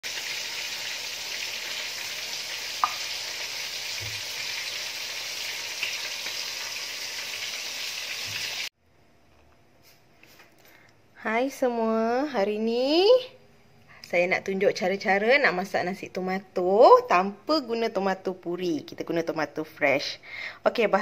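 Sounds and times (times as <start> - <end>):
food frying in hot oil: 0.0 - 8.7.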